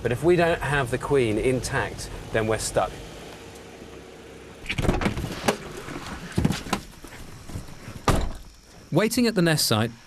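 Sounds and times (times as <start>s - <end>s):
irregular knocks and thumps: 4.7s - 8.6s.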